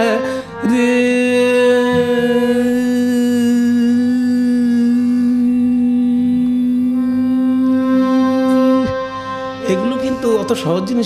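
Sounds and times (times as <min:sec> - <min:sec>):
man singing a long note: 0:00.0 - 0:11.0.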